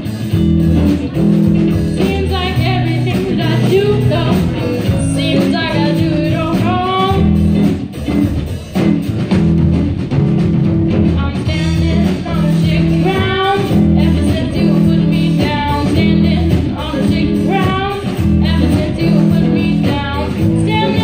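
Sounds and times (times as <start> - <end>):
drum kit: 0.0 - 21.0
electric guitar: 0.0 - 21.0
upright double bass: 0.0 - 21.0
woman singing: 1.7 - 7.5, 11.1 - 21.0.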